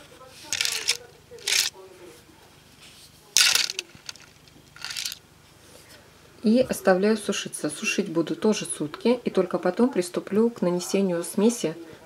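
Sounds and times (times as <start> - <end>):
rustling and scraping on cloth: 2.7 - 5.9.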